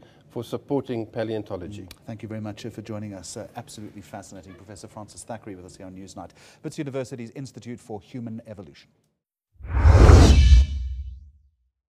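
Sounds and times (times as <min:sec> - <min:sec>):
loud whoosh: 0:09.6 - 0:11.2.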